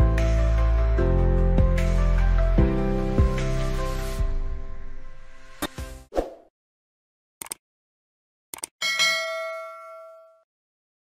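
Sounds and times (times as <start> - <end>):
bell-like ding: 8.8 - 10.5.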